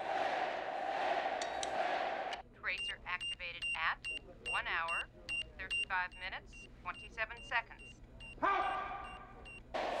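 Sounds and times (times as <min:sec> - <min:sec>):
crowd noise: 0:08.5 - 0:10.0.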